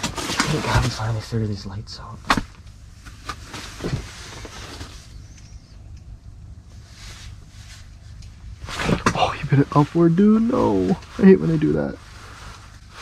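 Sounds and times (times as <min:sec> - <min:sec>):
low steady hum: 0:00.0 - 0:13.0
faint rustling and knocks: 0:02.6 - 0:05.6
clothing scuffing rustle: 0:06.7 - 0:09.1.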